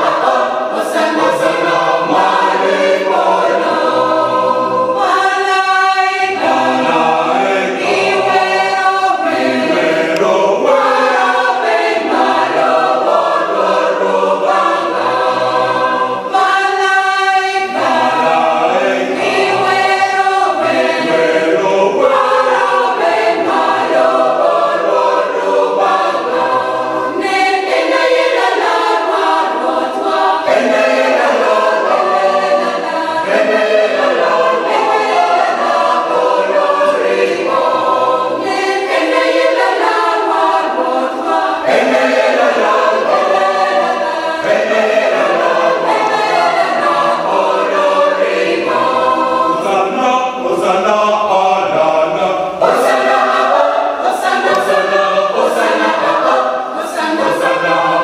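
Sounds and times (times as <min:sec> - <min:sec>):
choir singing a carol: 0:00.0 - 0:58.0.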